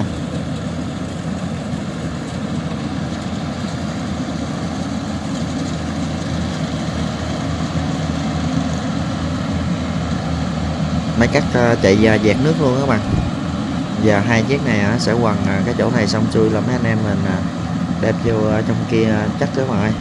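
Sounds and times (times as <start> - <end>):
combine harvester running: 0.0 - 20.0.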